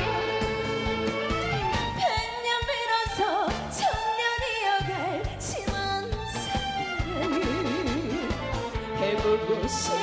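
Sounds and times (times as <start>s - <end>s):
backing track with drums: 0.0s - 10.0s
woman singing into a microphone: 2.0s - 7.0s.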